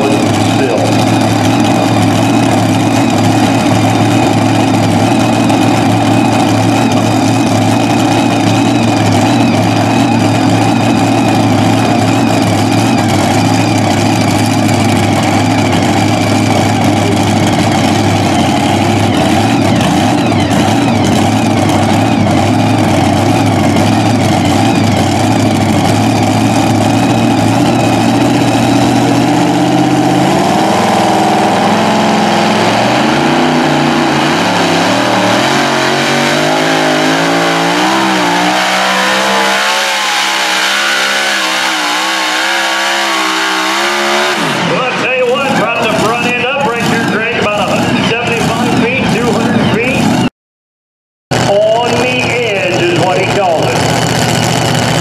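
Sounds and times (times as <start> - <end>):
truck engine idling and revving: 0.0 - 50.3, 51.3 - 55.0.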